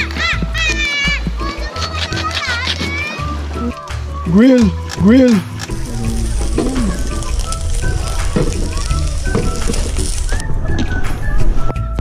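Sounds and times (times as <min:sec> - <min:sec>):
background music: 0:00.0 - 0:12.0
skewers sizzling on grill: 0:01.5 - 0:10.4.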